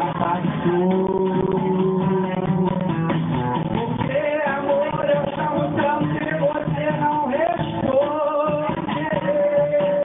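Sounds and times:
acoustic guitar song: 0.0s - 10.0s.

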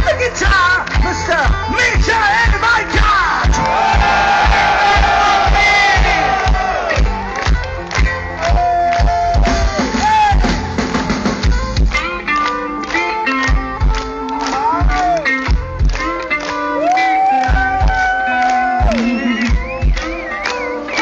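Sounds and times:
crowd cheering and yelling: 0.0s - 21.0s
drum beats: 0.0s - 21.0s
electric guitar lead with bent notes: 0.0s - 21.0s.

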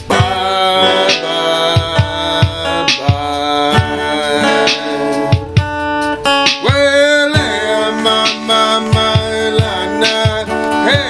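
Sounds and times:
man singing held wordless note: 0.0s - 5.6s, 6.4s - 11.0s
acoustic guitar strumming chords: 0.0s - 11.0s.

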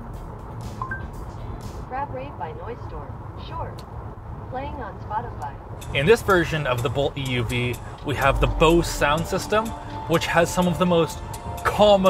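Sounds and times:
road and tyre rumble in car: 0.0s - 12.0s
two-note rising electronic chime: 8.0s - 11.6s.

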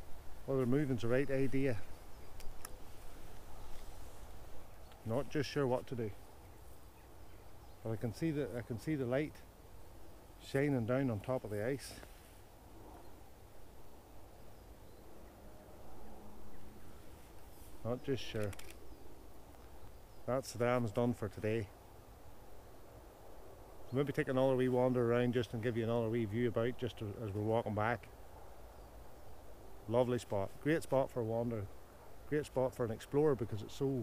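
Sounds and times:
faint low background noise: 0.0s - 34.0s.

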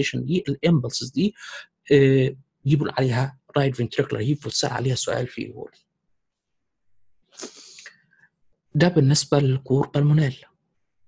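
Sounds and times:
man sniffing: 7.4s - 8.0s.

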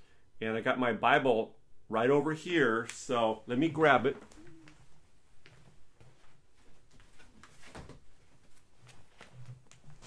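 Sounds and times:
soft knocks and rustles: 4.2s - 10.0s.

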